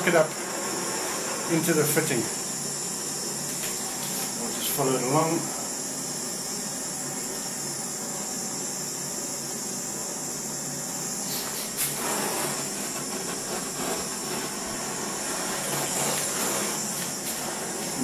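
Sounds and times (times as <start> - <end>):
blowtorch flame hissing: 0.0 - 18.0.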